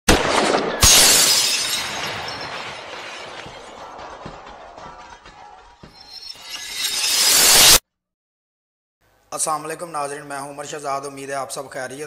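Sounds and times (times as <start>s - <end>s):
glass breaking crash: 0.1s - 3.8s, 5.9s - 7.8s
debris scattering: 0.1s - 4.4s.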